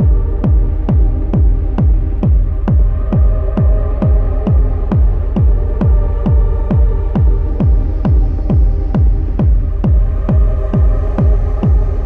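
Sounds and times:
droning synth: 0.0s - 12.0s
techno kick drum: 0.0s - 12.0s.

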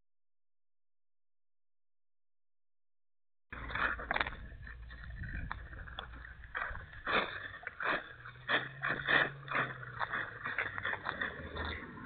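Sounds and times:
footsteps on wet gritty sidewalk: 3.6s - 12.0s.

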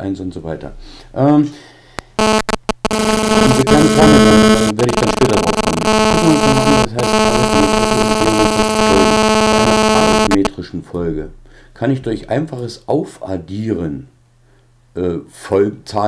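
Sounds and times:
harsh electronic buzz: 2.0s - 10.5s
person speaking: 2.0s - 10.6s.

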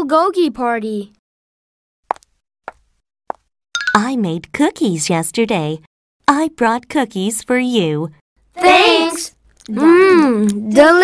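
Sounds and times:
woman speaking: 3.9s - 8.2s.

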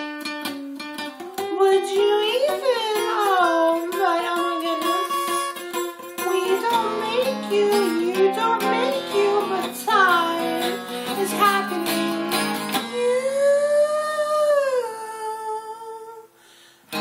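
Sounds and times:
acoustic guitar strumming: 0.0s - 13.8s.

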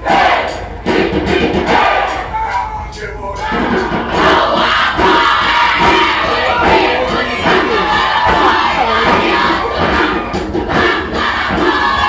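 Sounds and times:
group chanting and shouting: 0.0s - 12.0s.

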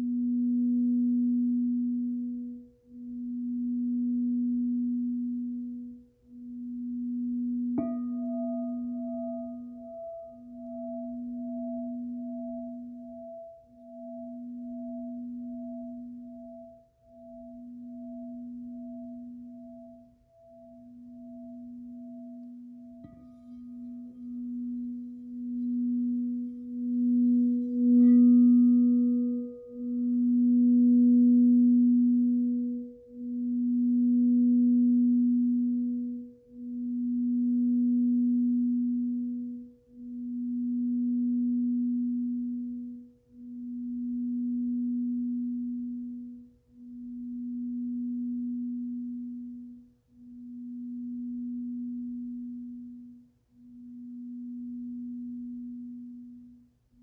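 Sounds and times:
singing bowl ringing: 6.3s - 49.6s.

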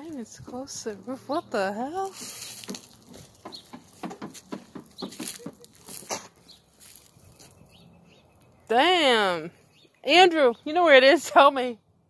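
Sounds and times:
footsteps crunching on mulch and leaves: 0.0s - 8.7s.

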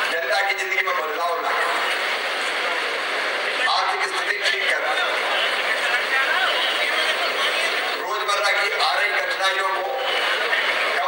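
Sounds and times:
man speaking into a microphone: 0.0s - 1.8s, 3.6s - 5.4s, 8.0s - 10.1s
background noise: 0.0s - 11.0s.

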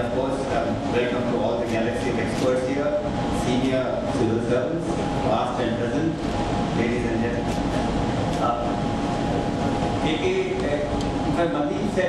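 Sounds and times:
low room rumble and hum: 0.0s - 12.0s
man saying uh into microphone: 6.8s - 7.6s, 10.0s - 12.0s.

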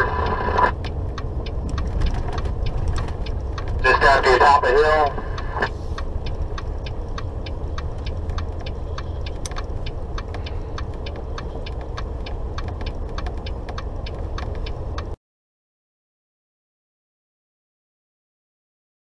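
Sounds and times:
truck diesel engine running: 0.0s - 15.2s
turn signal ticking: 0.0s - 15.2s.

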